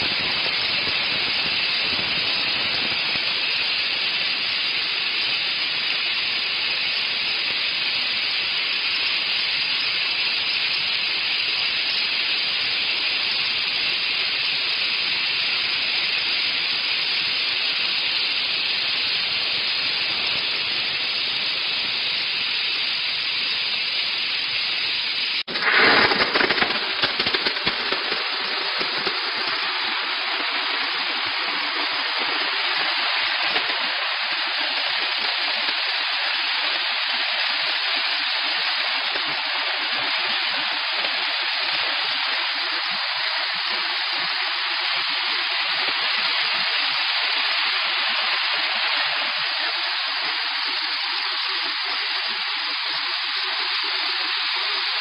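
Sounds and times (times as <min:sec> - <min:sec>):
crackling steam spurts: 0:00.0 - 0:55.0
steam spray gun hissing: 0:00.0 - 0:55.0.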